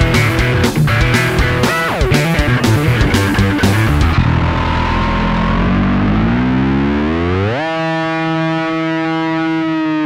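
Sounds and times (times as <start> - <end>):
distorted bass note sliding up: 0.0 - 10.0.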